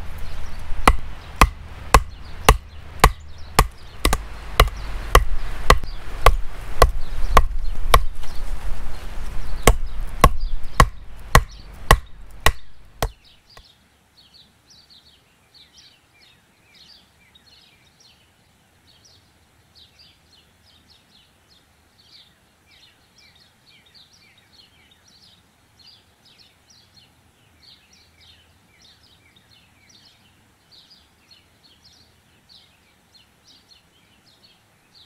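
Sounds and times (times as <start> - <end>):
small birds chirping: 0.0 - 35.0
hatchet chopping log: 0.8 - 8.2, 9.6 - 13.2.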